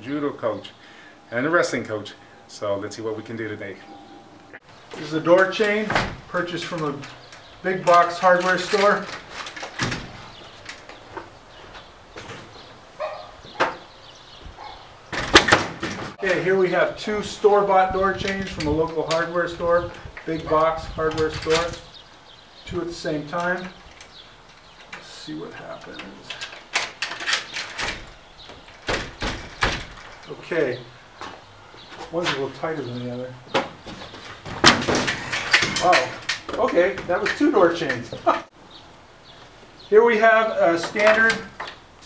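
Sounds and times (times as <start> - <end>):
door banging against chain: 4.9 - 11.0, 14.6 - 16.3, 17.4 - 22.0, 25.7 - 30.3, 33.6 - 38.2
light metal clicks and knocks: 23.2 - 30.3, 33.5 - 38.5
door knocking against chains: 26.8 - 30.2.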